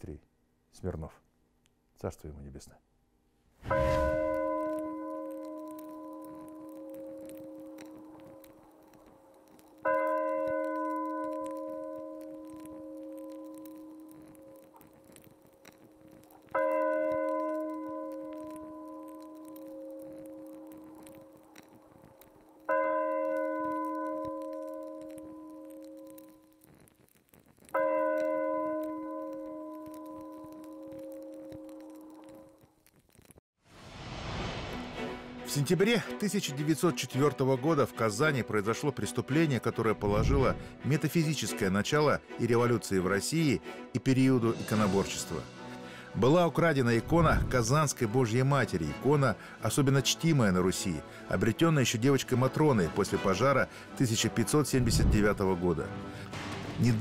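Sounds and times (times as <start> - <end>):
bell tolling slowly: 3.6 - 14.8.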